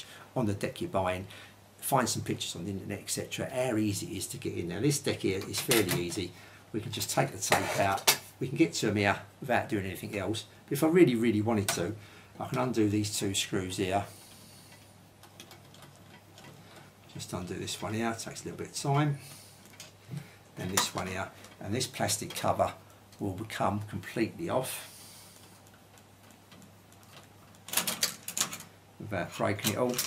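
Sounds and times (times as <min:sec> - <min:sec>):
faint handling noise: 0:05.2 - 0:06.4, 0:11.5 - 0:30.0.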